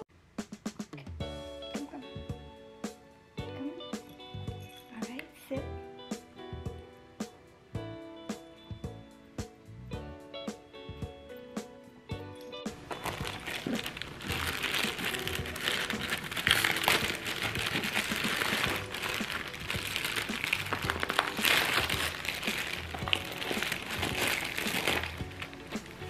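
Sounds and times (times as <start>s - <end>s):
background music: 0.4s - 26.0s
plastic bag crinkling: 12.8s - 26.0s.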